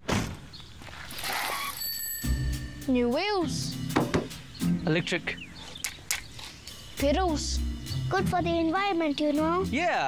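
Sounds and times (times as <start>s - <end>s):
bicycle bell ringing: 1.6s - 3.3s
background music: 2.1s - 10.0s.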